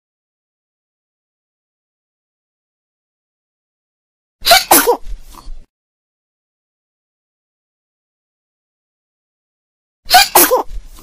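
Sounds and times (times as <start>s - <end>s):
person sneezing: 4.4s - 5.5s, 10.1s - 11.0s.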